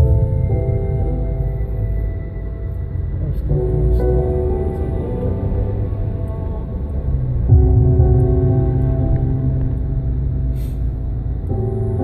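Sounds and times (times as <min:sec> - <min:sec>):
deep bass: 0:00.0 - 0:12.0
synthesizer chords: 0:00.0 - 0:12.0.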